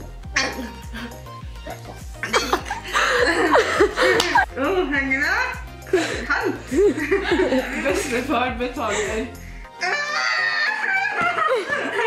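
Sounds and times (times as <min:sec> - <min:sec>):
background music: 0:00.0 - 0:12.0
young women laughing: 0:01.7 - 0:04.5, 0:06.0 - 0:09.2, 0:09.8 - 0:12.0.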